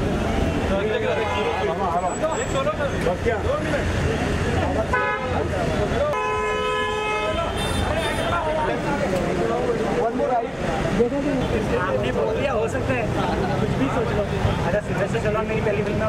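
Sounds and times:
crowd of people talking: 0.0 - 16.0
vehicle horn honking: 4.9 - 5.4, 6.0 - 8.5.

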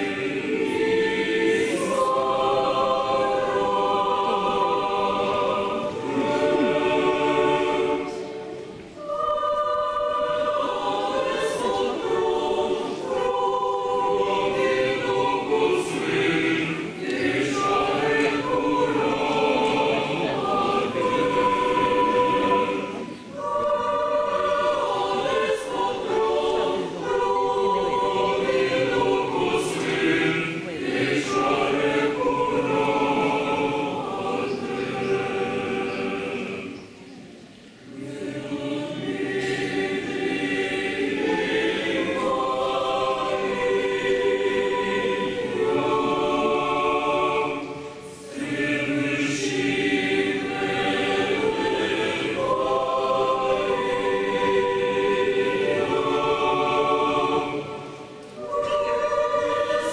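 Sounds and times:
choir singing unaccompanied: 0.0 - 59.9.

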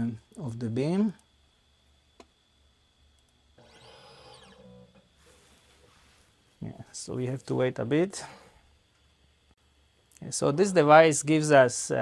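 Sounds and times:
small motor whine: 3.6 - 5.6.

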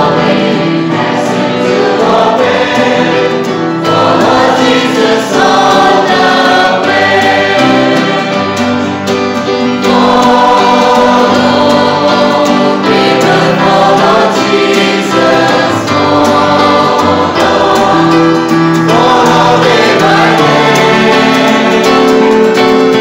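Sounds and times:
acoustic guitar: 0.0 - 23.0
congregation singing a hymn: 0.0 - 23.0
electronic keyboard: 0.0 - 23.0.

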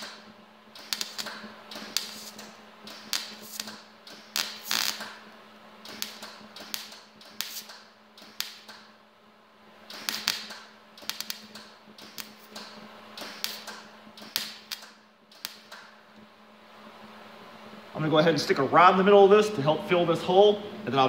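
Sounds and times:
welder arc crackling: 0.0 - 9.1, 9.7 - 21.0
steady low hum: 0.0 - 21.0.

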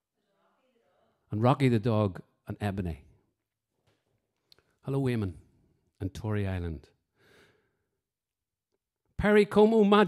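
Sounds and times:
faint breath at microphone: 7.1 - 7.9.

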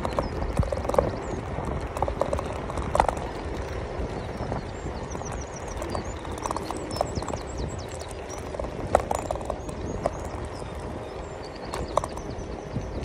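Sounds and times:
scooter frame clacking: 0.0 - 13.0
tyre and wind rumble: 0.0 - 13.0.

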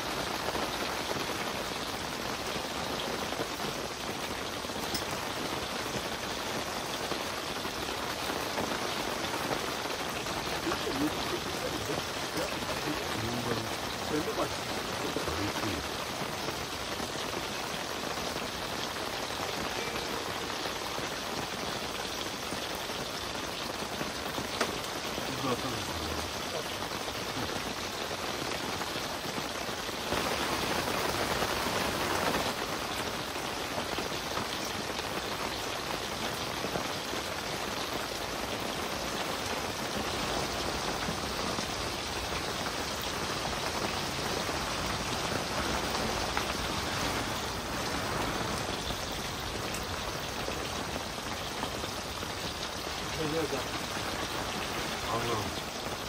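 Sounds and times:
rain on tent fabric: 0.0 - 56.0.

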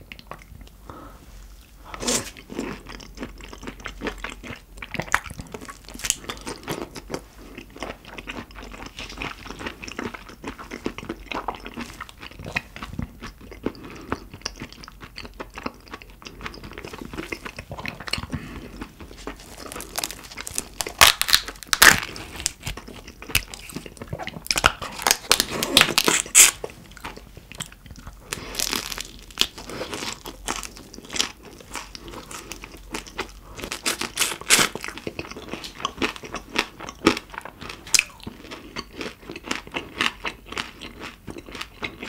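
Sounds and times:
wet chewing and biting: 2.0 - 42.0
shrimp shells crackling: 19.1 - 22.8, 28.2 - 30.8.

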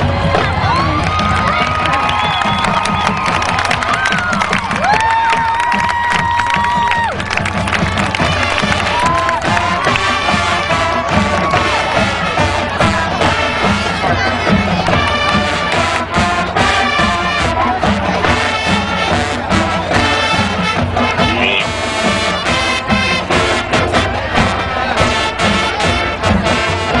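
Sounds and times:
crowd cheering and shouting: 0.0 - 27.0
drums keeping a steady beat: 0.0 - 27.0
marching band playing: 0.0 - 27.0.

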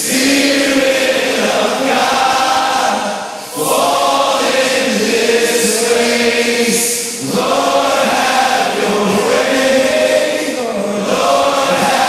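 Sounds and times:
group singing worship song: 0.0 - 12.0.

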